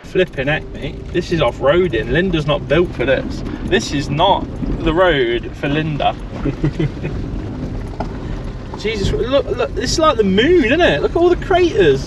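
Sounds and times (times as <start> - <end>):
tyre and suspension rumble: 0.0 - 12.0.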